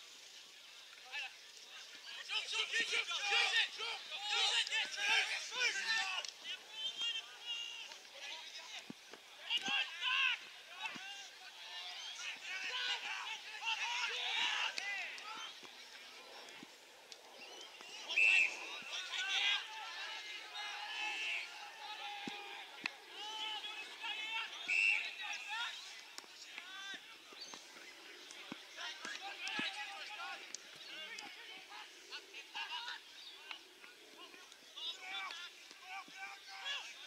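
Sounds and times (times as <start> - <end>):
distant people shouting: 9.4 - 15.7, 17.9 - 27.1.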